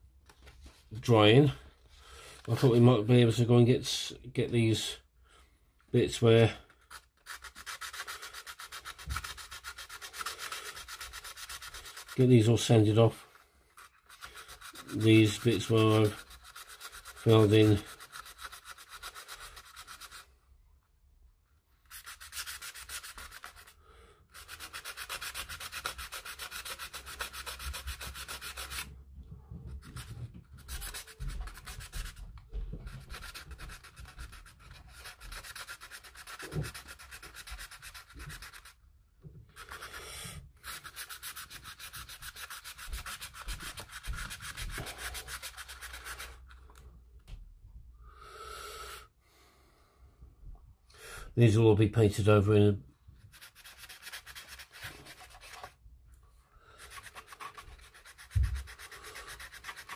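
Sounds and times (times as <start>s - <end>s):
hand sanding plastic: 6.0s - 20.3s, 21.8s - 38.8s, 39.4s - 46.8s, 53.2s - 55.8s, 56.7s - 59.9s.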